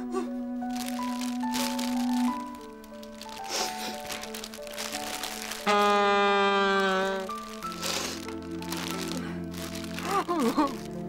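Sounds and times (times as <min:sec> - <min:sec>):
soft background music: 0:00.0 - 0:11.0
woman blowing her nose: 0:03.4 - 0:04.1, 0:07.8 - 0:08.3.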